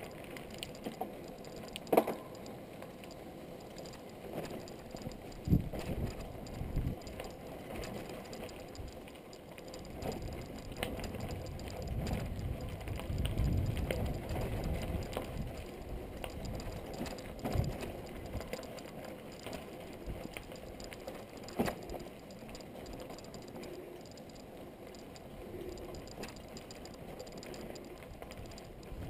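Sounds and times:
bike rattling and clicking: 0:00.0 - 0:29.0
bike tyres rolling on dirt: 0:00.0 - 0:29.0
wind and ground rumble: 0:00.0 - 0:29.0.

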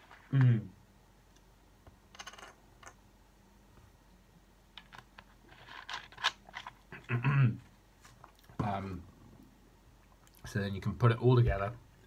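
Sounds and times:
throat-clearing grunt: 0:07.0 - 0:07.6.

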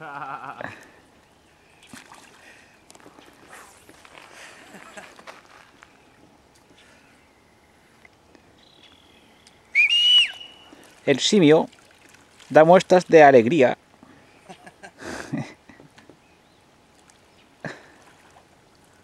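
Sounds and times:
river water splashing: 0:00.8 - 0:06.8, 0:09.5 - 0:14.8, 0:16.7 - 0:19.0
whistle rising and falling: 0:09.7 - 0:10.7.

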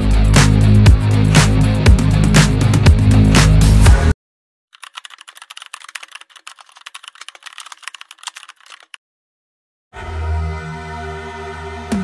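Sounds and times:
fast typing on keyboard: 0:04.8 - 0:09.0.

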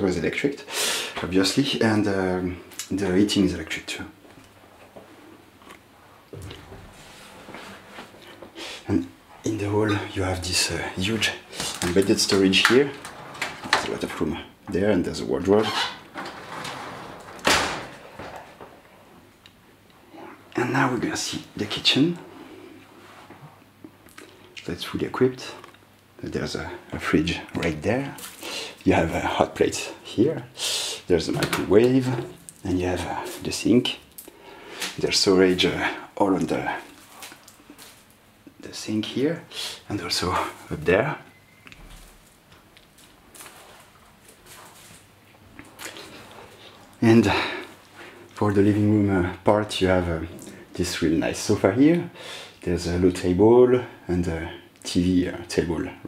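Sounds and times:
sliding wardrobe door bang: 0:16.2 - 0:18.6.

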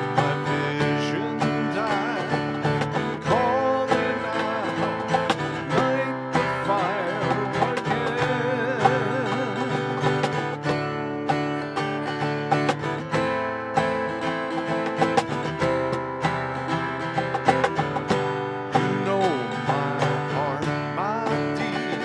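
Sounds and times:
acoustic guitar strumming: 0:00.0 - 0:22.0
hand strikes on a cajon: 0:00.0 - 0:22.0.

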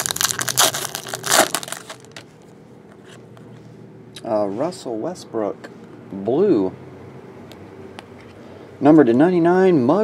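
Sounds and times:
foil wrapper crinkling: 0:00.0 - 0:02.2.

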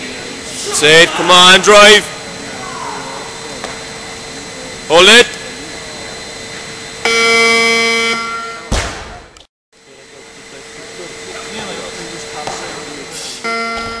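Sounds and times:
arena background noise: 0:00.0 - 0:09.4
competition buzzer: 0:07.0 - 0:08.7, 0:13.4 - 0:14.0.

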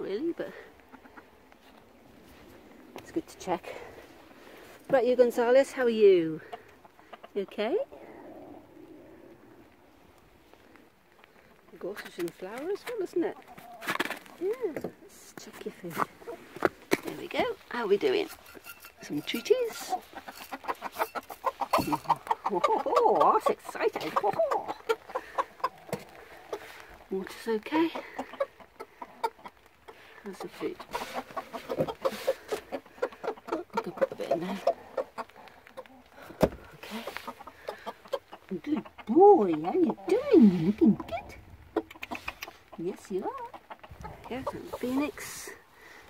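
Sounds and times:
rooster clucking: 0:18.6 - 0:26.7, 0:27.7 - 0:36.1, 0:36.8 - 0:45.5.

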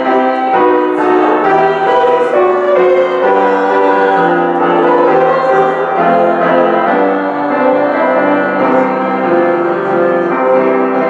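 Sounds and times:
keyboard playing hymn chords: 0:00.0 - 0:11.0.

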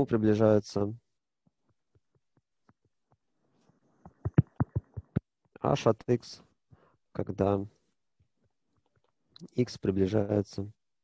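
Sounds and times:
stylus tapping on glass screen: 0:04.0 - 0:05.2.

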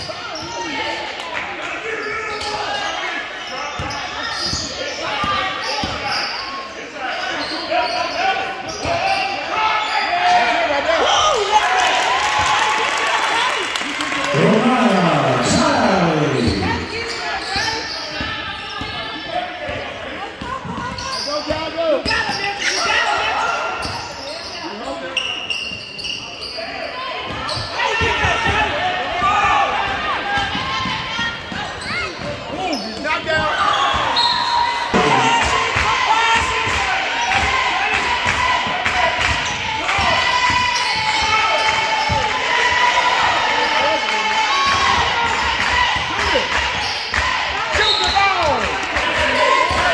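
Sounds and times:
voices of players and spectators: 0:00.0 - 0:49.9.

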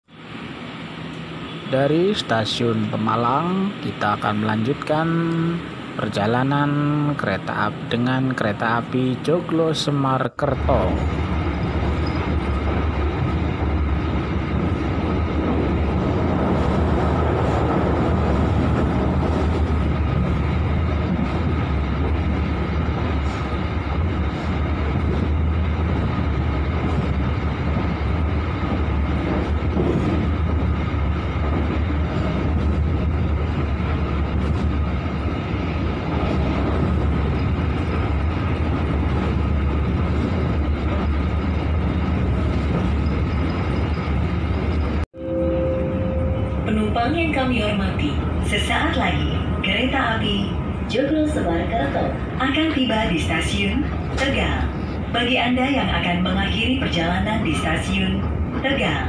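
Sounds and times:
train wheels rumbling on rail: 0:10.5 - 0:45.1, 0:46.6 - 0:59.0
public address chime: 0:45.2 - 0:48.2
steady tone: 0:45.2 - 0:48.7.

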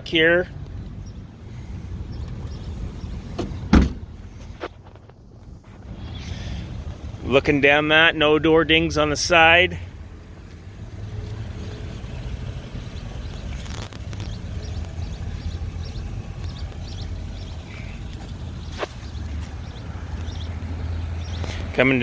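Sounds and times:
low outdoor rumble: 0:00.0 - 0:22.0.

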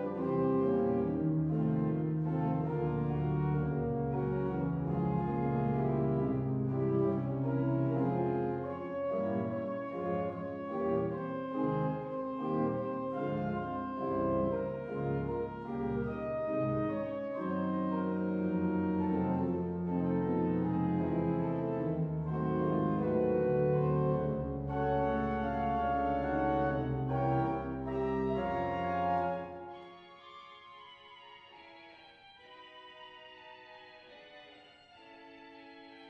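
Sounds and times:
deep organ pedal bass notes: 0:00.0 - 0:29.7
pipe organ playing chords: 0:00.0 - 0:36.0.

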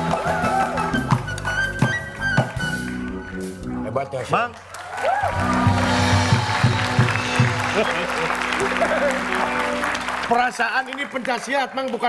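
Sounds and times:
audience applauding and cheering: 0:00.0 - 0:03.5, 0:04.4 - 0:12.0
music playing: 0:00.0 - 0:11.0
man talking: 0:03.7 - 0:04.6, 0:07.2 - 0:12.0.

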